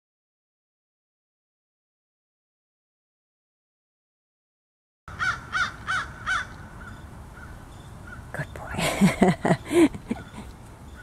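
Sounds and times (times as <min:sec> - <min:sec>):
low outdoor background: 0:05.1 - 0:11.0.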